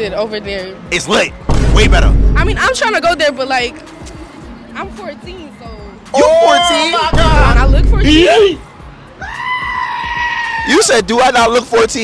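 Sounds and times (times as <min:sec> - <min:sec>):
long high-pitched cry: 0:09.2 - 0:10.7.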